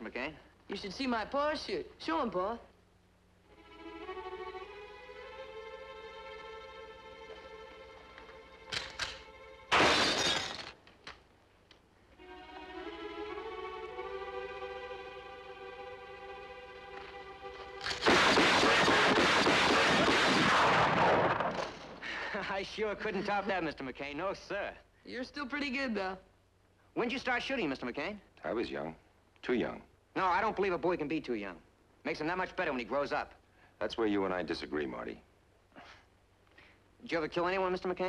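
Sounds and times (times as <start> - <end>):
loud crack: 8.8 - 10.8, 17.8 - 22.1
glass bottles shattering: 9.7 - 10.8, 17.8 - 20.1
strings holding chords: 12.2 - 17.8
rifle rapid fire: 17.9 - 21.9.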